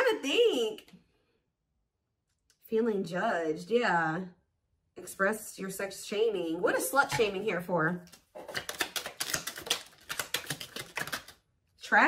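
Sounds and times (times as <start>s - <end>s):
cards being shuffled by hand: 8.0s - 11.4s.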